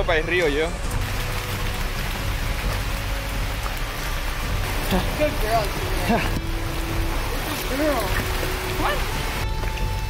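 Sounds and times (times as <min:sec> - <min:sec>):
stream running over rocks: 0:00.0 - 0:10.0.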